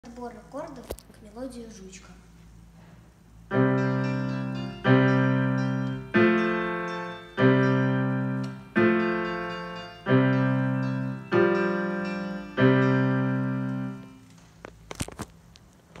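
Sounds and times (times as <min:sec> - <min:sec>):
slow piano chords: 0:03.5 - 0:14.3.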